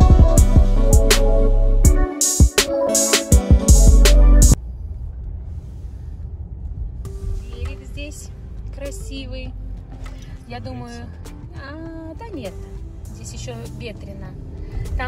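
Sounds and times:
car cabin road and engine rumble: 4.5 - 15.0.

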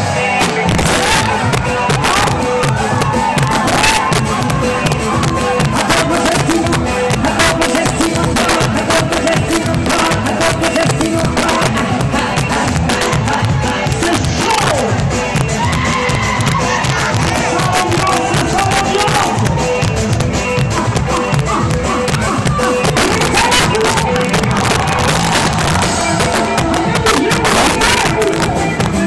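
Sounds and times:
crowd voices: 0.0 - 29.0
live dance music with singing: 0.0 - 29.0.

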